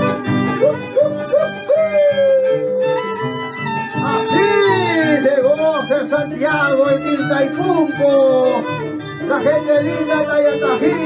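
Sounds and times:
folk band with harp and violins: 0:00.0 - 0:11.0
falsetto whoops: 0:00.5 - 0:05.3
long high sliding cry: 0:01.5 - 0:03.3.

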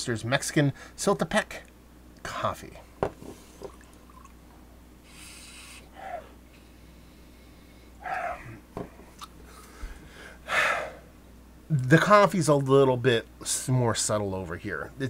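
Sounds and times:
person sniffing: 0:05.0 - 0:07.3, 0:09.6 - 0:11.1.

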